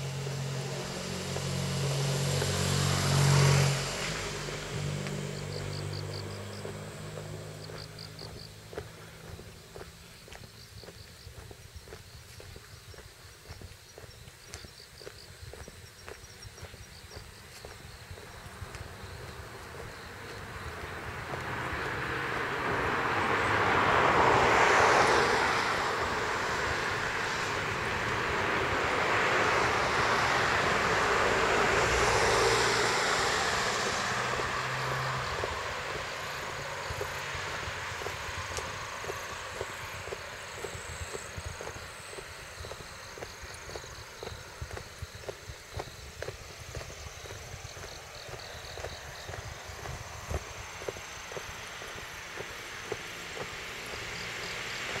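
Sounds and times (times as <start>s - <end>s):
passing vehicle rushing: 0.0s - 10.3s, 17.4s - 55.0s.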